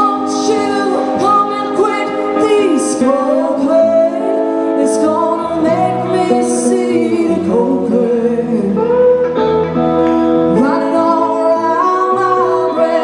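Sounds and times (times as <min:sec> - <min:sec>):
woman singing: 0:00.0 - 0:09.5, 0:10.4 - 0:13.0
slide guitar: 0:00.0 - 0:13.0.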